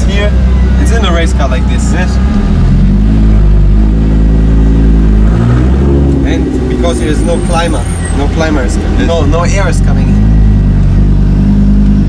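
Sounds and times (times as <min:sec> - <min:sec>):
race car engine droning: 0:00.0 - 0:12.0.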